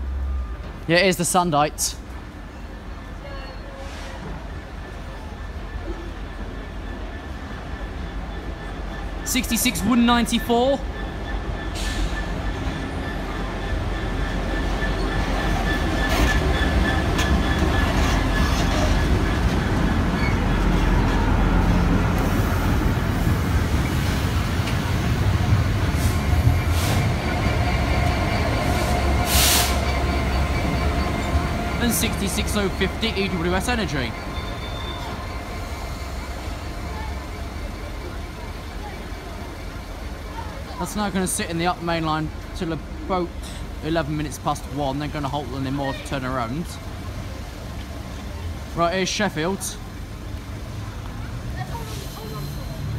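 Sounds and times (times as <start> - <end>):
diesel locomotive passing: 0.0 - 52.9
train wheels on rail: 0.0 - 52.9.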